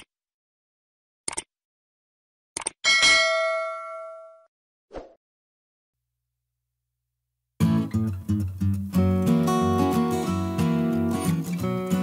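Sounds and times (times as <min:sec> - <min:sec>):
bright bell ding: 0:02.9 - 0:04.5.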